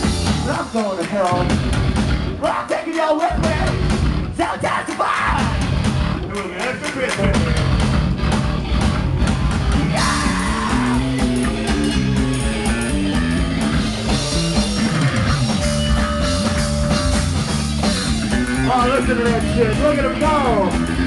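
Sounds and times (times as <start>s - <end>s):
distorted guitar riffs: 0.0s - 21.0s
drums: 0.0s - 21.0s
keyboards: 0.0s - 21.0s
person yelling vocals: 9.8s - 11.2s.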